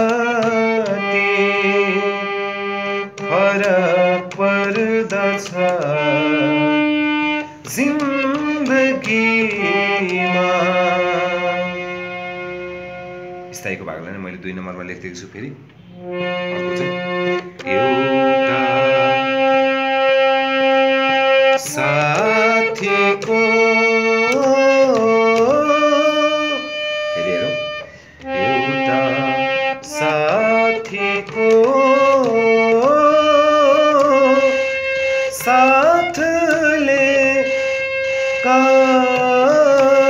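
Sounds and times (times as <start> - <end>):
person singing: 0.0 - 12.4, 16.5 - 19.9, 21.4 - 40.0
harmonium holding a note: 0.0 - 14.0, 15.7 - 40.0.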